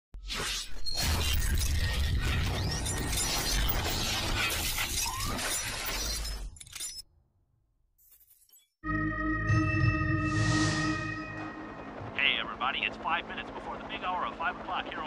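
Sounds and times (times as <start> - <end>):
sweeping whooshes: 9.9 - 12.2.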